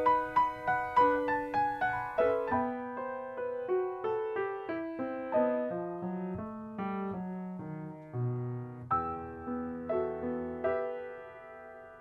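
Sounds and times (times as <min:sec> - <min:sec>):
grand piano playing: 0:00.0 - 0:12.0.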